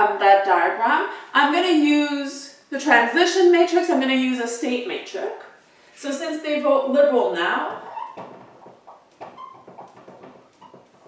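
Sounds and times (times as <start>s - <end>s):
marker squeaks: 7.8s - 11.0s.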